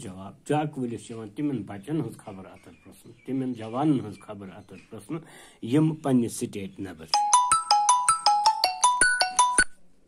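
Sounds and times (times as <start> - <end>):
marimba-like phone ringtone: 7.1 - 9.8.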